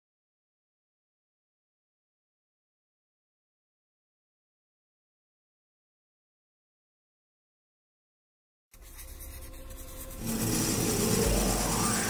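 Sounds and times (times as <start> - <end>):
music: 8.7 - 12.0
pencil scratching on paper: 8.8 - 12.0.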